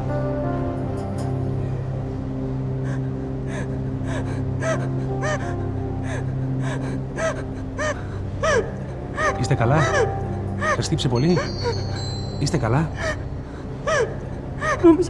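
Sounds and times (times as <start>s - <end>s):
ominous music drone: 0.0s - 15.0s.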